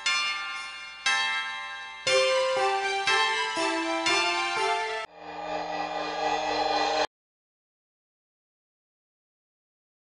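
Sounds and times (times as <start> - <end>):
sustained electronic tone: 5.1 - 7.1.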